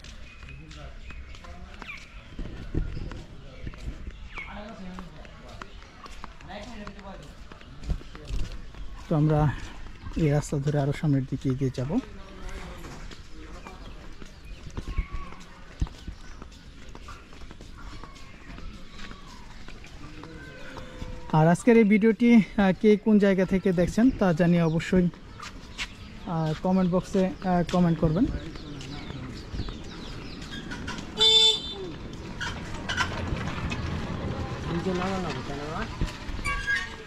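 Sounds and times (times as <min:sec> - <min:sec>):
vehicle horn beep: 0:31.2 - 0:31.9.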